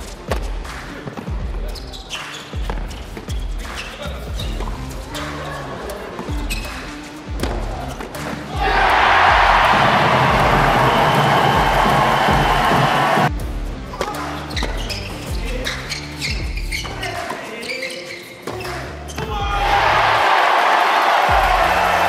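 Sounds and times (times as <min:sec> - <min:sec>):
backing music: 0:00.0 - 0:17.6, 0:18.3 - 0:22.0
crowd applauding and cheering: 0:08.6 - 0:13.3, 0:19.5 - 0:22.0.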